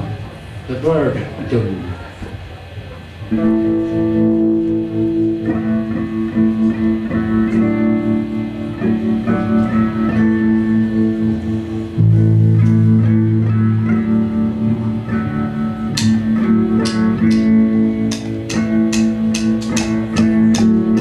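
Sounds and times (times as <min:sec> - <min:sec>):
guitars droning chord: 0:03.2 - 0:21.0
sharp percussive strikes: 0:16.0 - 0:21.0.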